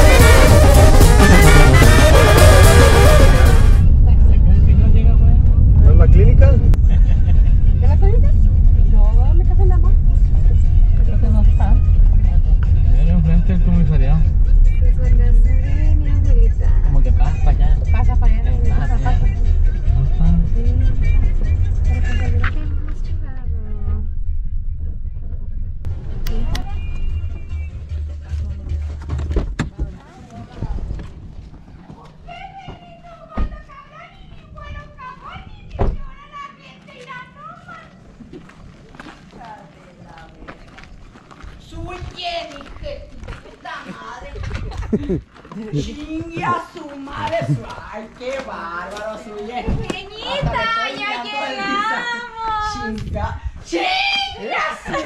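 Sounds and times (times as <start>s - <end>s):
brass band music: 0.0s - 3.9s
car rumbling over rough road: 0.0s - 27.7s
people's voices outside: 0.0s - 55.0s.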